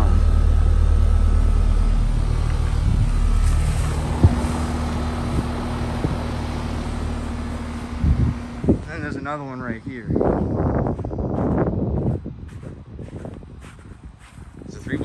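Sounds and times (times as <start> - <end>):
heat pump compressor and fan hum: 0.0 - 15.0.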